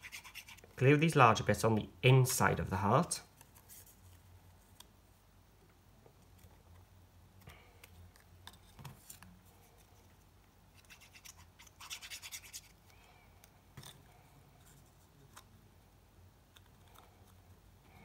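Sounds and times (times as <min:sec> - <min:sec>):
glue stick rubbing on card: 0:00.0 - 0:00.7, 0:10.8 - 0:12.7.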